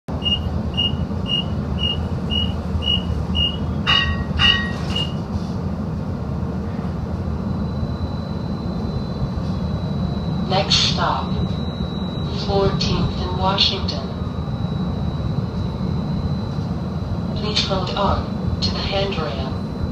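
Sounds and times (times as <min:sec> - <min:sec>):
streetcar rumble: 0:00.1 - 0:19.9
short high electronic beeps: 0:00.2 - 0:05.2.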